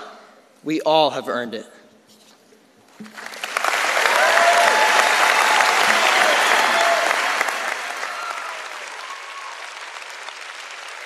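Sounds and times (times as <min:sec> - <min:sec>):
large audience applauding: 0:03.0 - 0:11.0
voices cheering: 0:03.8 - 0:10.1.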